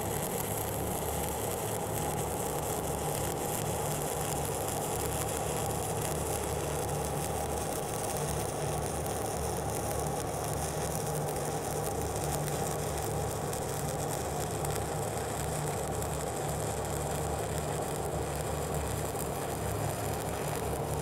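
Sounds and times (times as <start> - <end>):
welding arc crackling: 0.0 - 21.0.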